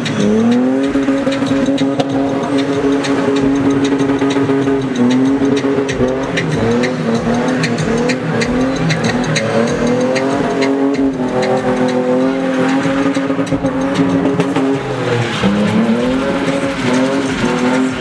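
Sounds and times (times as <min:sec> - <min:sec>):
car engine at high revs: 0:00.0 - 0:18.0
tyres squealing: 0:00.0 - 0:18.0.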